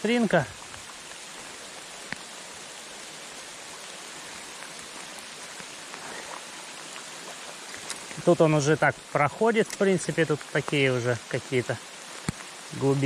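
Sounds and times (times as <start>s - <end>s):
rain falling on river: 0.0s - 13.0s.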